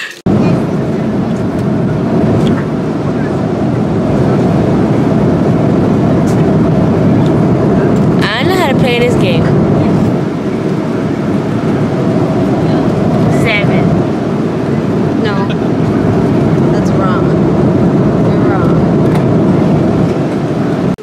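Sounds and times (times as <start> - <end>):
airliner cabin engine rush: 0.0 - 21.0
faint voices: 0.0 - 21.0.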